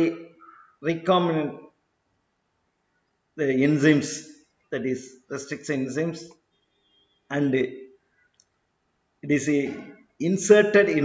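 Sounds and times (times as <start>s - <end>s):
man speaking: 0.0s - 1.7s, 3.4s - 6.3s, 7.3s - 7.8s, 9.2s - 11.0s.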